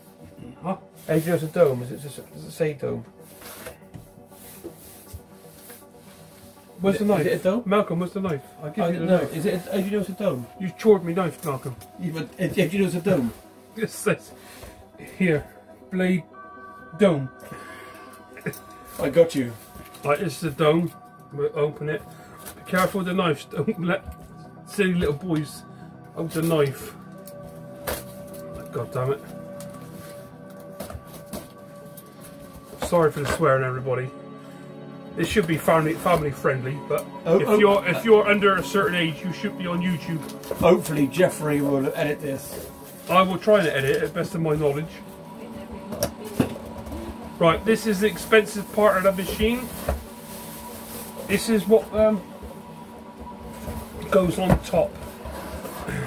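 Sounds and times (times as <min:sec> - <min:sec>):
faint background music: 0:00.0 - 0:56.0.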